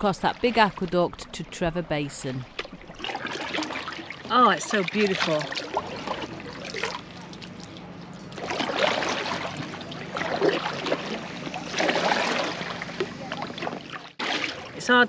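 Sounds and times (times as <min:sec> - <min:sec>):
paddle splashing in water: 0:02.4 - 0:15.0.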